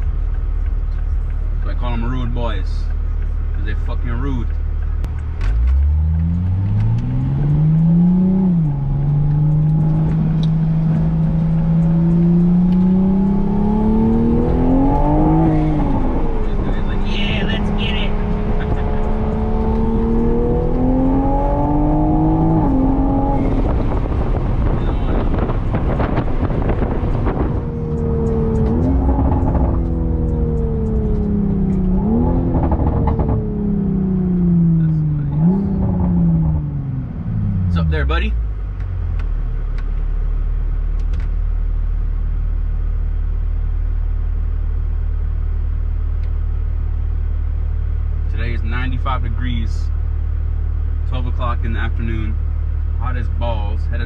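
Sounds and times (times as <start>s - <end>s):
car engine revving: 0.0s - 54.0s
exhaust crackles and pops: 0.0s - 54.0s.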